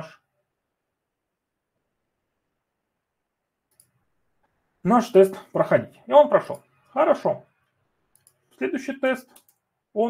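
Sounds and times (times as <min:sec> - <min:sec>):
man speaking: 0:00.0 - 0:00.2, 0:04.8 - 0:07.6, 0:08.5 - 0:10.0
faint click: 0:03.7 - 0:04.6, 0:08.1 - 0:08.4.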